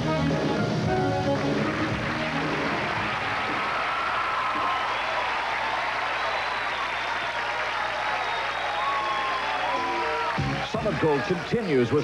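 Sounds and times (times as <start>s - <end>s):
live band song: 0.0s - 3.6s
audience applauding and cheering: 0.5s - 12.0s.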